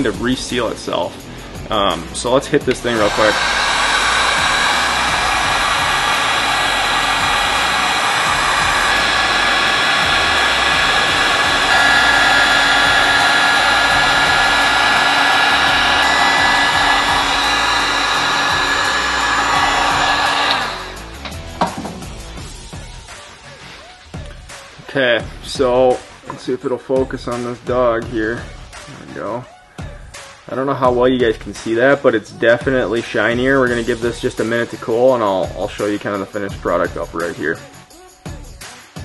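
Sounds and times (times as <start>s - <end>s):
heat gun blowing air: 1.9s - 22.5s.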